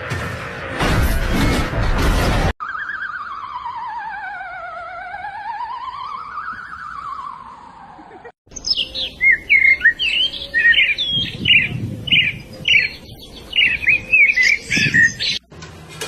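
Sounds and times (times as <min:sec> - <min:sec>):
wavering electronic tone: 0:02.6 - 0:07.8
bird chirping and whistling: 0:08.5 - 0:15.4.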